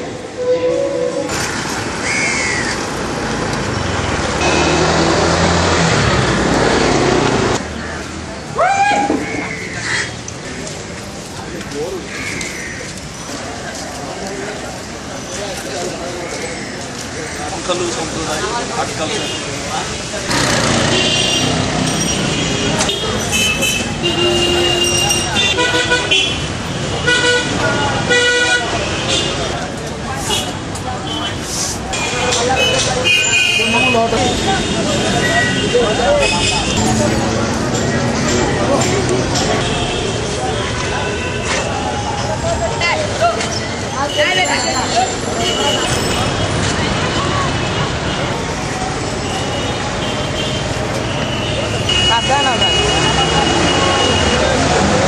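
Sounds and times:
street traffic din: 0.0 - 55.0
vehicle horns honking: 0.3 - 1.3, 4.4 - 5.4, 20.3 - 29.6, 32.0 - 37.4, 49.2 - 54.5
voices: 3.1 - 55.0.

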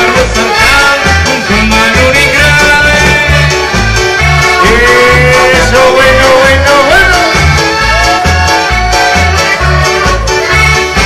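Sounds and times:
accordion-led dance band: 0.0 - 11.0
bouncing bass beat: 0.0 - 11.0.

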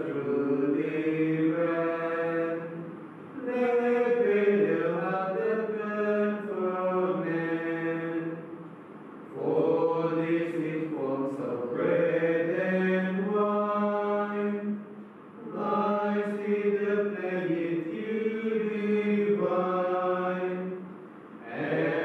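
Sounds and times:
men chanting: 0.0 - 8.5, 9.3 - 14.8, 15.4 - 22.0.

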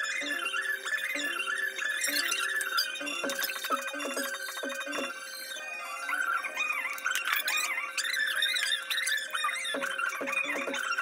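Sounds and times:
high wavering melody: 0.0 - 11.0.

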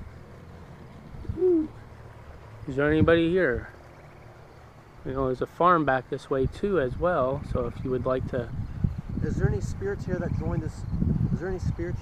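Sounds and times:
low hoot-like call: 1.2 - 1.9.

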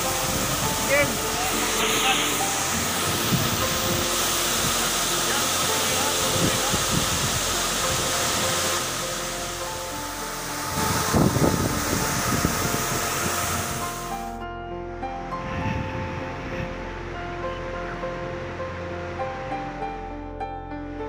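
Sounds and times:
waterfall roar: 0.0 - 14.4
background music: 0.0 - 21.0.

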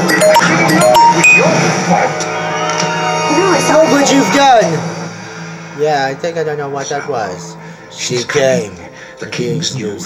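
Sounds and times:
film background music with drone: 0.0 - 10.0
characters' dialogue: 3.1 - 10.0.

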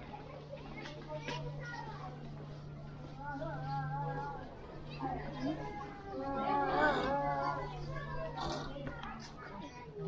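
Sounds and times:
distant children playing and calling: 0.0 - 10.0.

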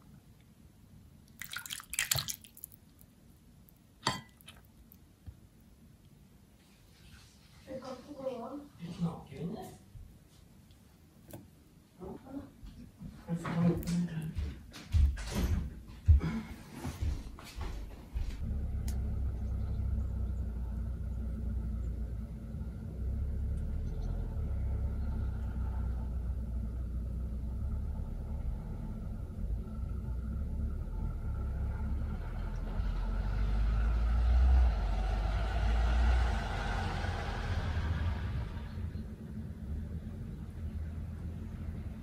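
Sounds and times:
low outdoor rumble: 0.0 - 42.0
car passing: 18.2 - 42.0.

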